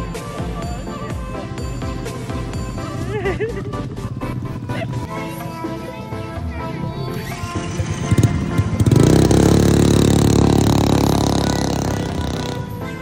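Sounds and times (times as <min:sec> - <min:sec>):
background music: 0:00.0 - 0:13.0
mini-bike engine: 0:02.5 - 0:12.8.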